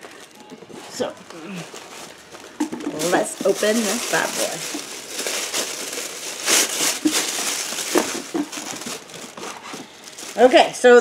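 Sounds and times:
cardboard box rustling: 0.0 - 10.6.

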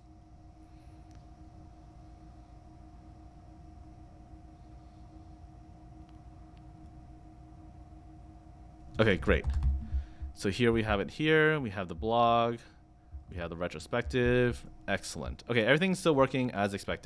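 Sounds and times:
hum of two held tones: 0.0 - 17.0.

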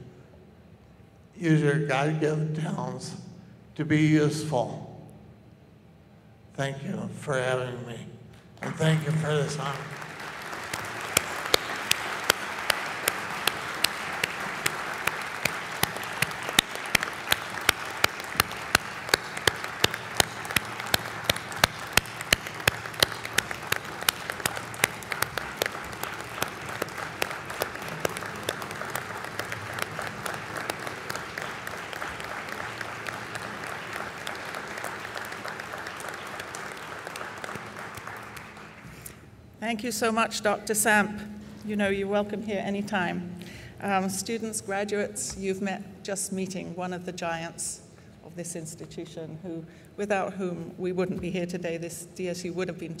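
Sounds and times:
audience applauding: 8.6 - 39.2.

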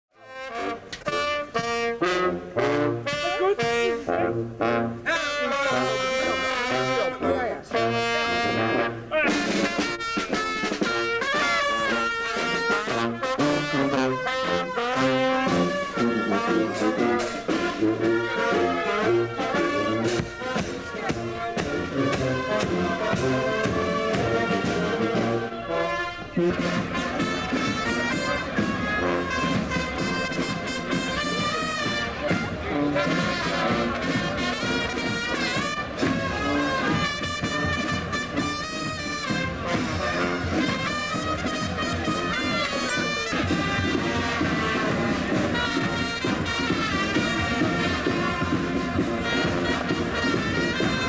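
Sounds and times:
brass band playing: 0.1 - 51.0.

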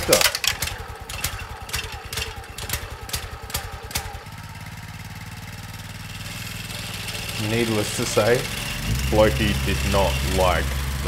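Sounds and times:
small petrol engine idling: 0.0 - 11.0.

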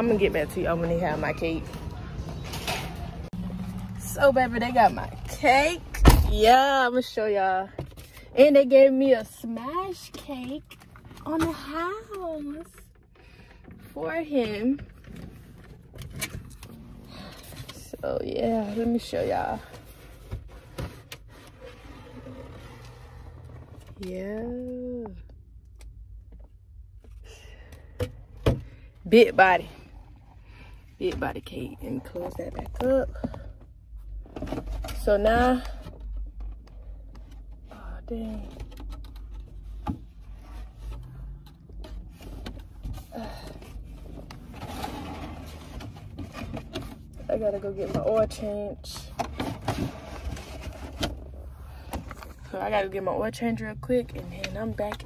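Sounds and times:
soft scraping and rubbing: 16.7 - 23.9.

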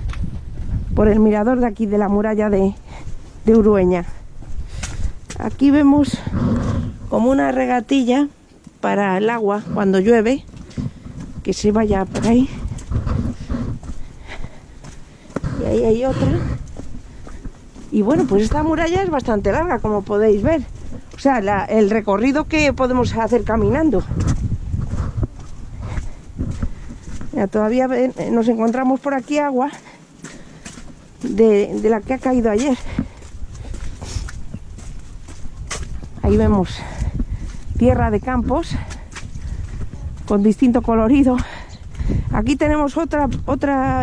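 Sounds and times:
steady low rumble: 0.0 - 28.9, 29.8 - 44.0
footsteps on stone: 0.0 - 44.0
low steady rumble: 9.6 - 28.8.

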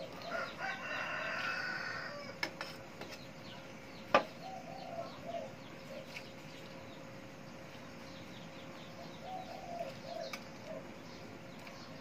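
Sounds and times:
faint small birds chirping: 0.0 - 12.0
dove cooing: 4.4 - 6.4, 9.0 - 11.0.

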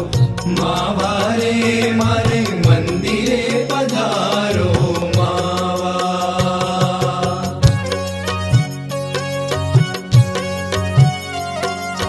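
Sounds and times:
bass line: 0.0 - 12.0
percussion strikes: 0.0 - 12.0.

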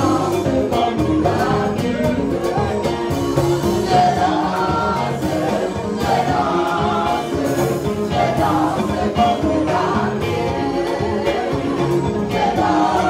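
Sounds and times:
choir singing gospel with band: 0.0 - 13.0.

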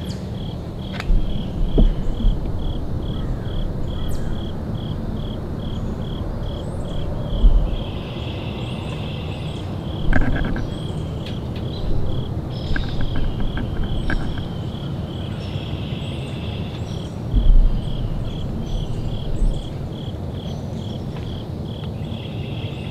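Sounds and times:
insect chirping: 0.0 - 22.9
low rumble: 0.4 - 15.6, 17.0 - 21.5
camera handling thumps and clicks: 10.1 - 10.7.

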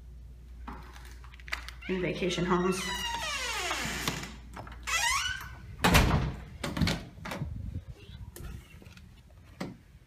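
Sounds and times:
door hinges squeaking: 1.8 - 7.0
loud door thunk: 5.8 - 7.4.

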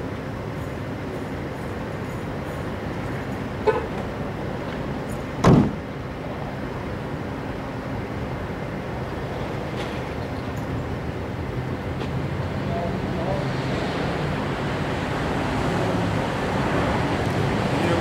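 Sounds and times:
traffic noise: 0.0 - 18.0.

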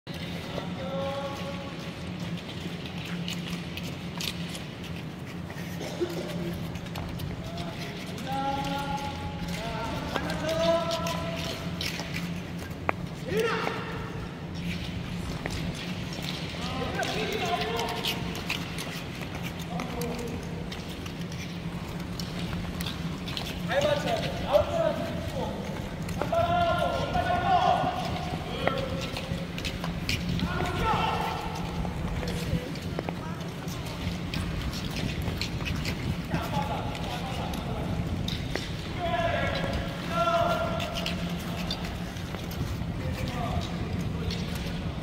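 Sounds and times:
skate blades scraping on ice: 0.1 - 45.0
steady low hum: 0.1 - 45.0
echoing voices calling out: 5.6 - 12.4, 13.1 - 15.3, 22.8 - 33.7, 36.2 - 42.4.

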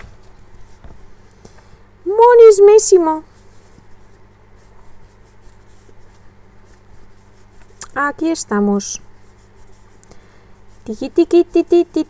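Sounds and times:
person speaking: 2.0 - 3.4, 7.2 - 9.9, 10.7 - 12.0
crochet hook rubbing yarn: 3.2 - 10.0, 10.6 - 12.0.

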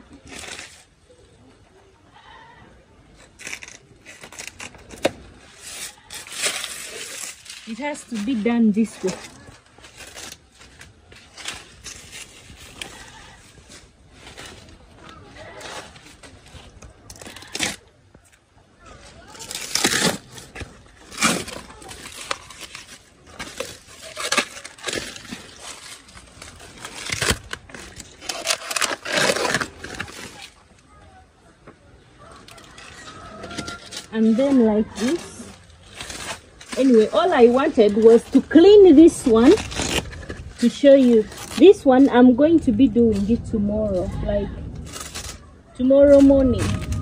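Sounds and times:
plant fibres ripping and crackling: 0.0 - 1.5, 3.0 - 31.1, 32.2 - 47.0.

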